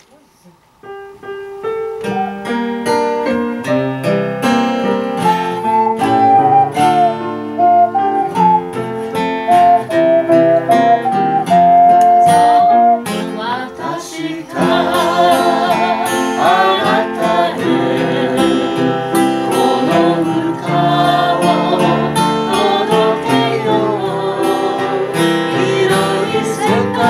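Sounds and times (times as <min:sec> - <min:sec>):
ocarina melody: 0:01.5 - 0:14.0, 0:14.6 - 0:27.0
plucked strings: 0:02.9 - 0:13.2.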